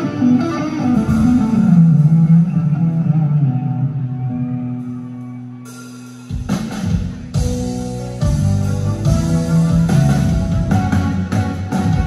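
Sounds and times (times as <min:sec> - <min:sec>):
electric guitar: 0:00.0 - 0:05.6
live band playing: 0:00.0 - 0:12.0.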